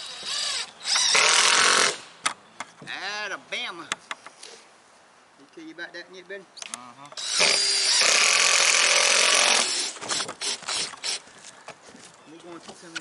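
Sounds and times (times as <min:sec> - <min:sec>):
cordless drill driving screw: 0:00.0 - 0:02.0, 0:07.2 - 0:11.2.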